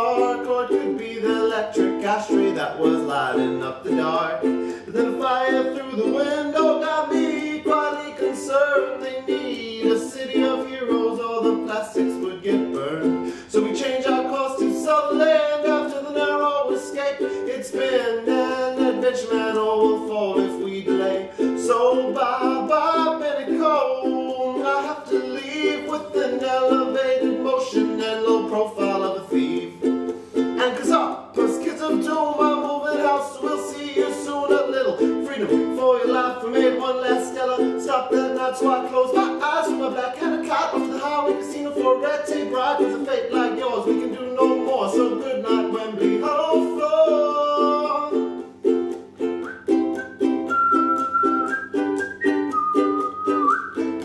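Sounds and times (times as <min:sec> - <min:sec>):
ukulele strumming: 0:00.0 - 0:54.0.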